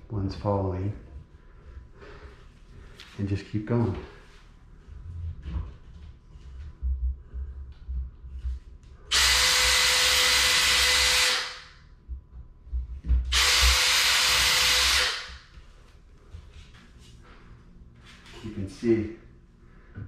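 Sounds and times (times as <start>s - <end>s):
cordless drill whining: 9.1s - 11.6s, 13.3s - 15.4s.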